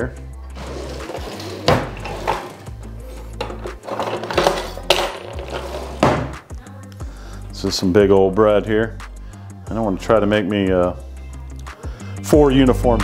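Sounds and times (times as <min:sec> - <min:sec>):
background music: 0:00.0 - 0:13.0
knives and cutlery clattering: 0:00.9 - 0:06.2.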